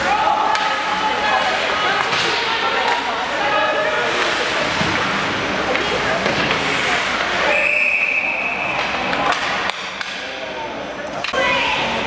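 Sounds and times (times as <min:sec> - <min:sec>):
crowd chatter: 0:00.0 - 0:12.0
referee's whistle: 0:07.5 - 0:08.8.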